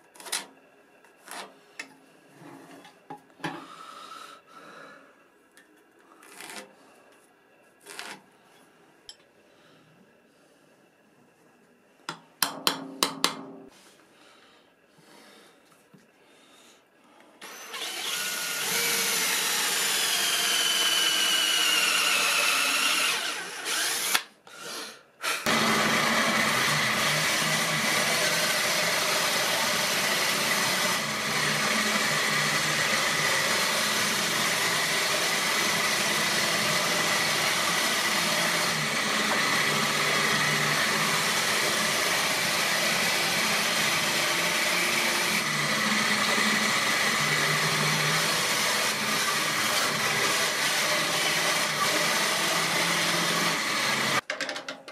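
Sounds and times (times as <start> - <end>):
cordless drill whining: 17.4 - 24.3, 25.2 - 54.2
bandsaw cutting wood: 17.5 - 24.3, 25.3 - 54.2.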